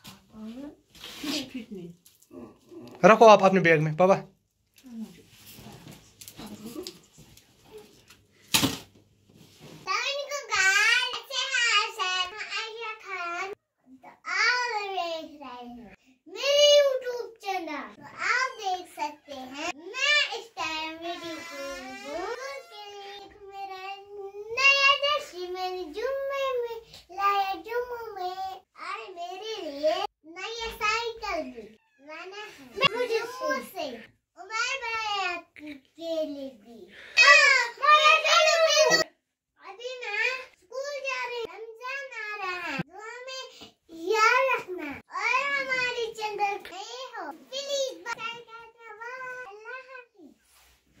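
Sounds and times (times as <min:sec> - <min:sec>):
girl's high-pitched voice: 0:09.9 - 0:50.4.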